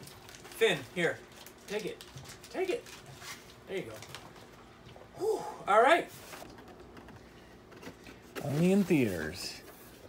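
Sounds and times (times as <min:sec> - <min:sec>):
cardboard rustling: 0:07.7 - 0:10.0.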